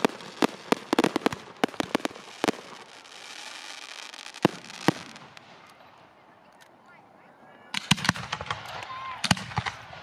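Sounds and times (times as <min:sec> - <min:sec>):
fireworks cracks and bangs: 0:00.0 - 0:06.2, 0:07.8 - 0:10.0.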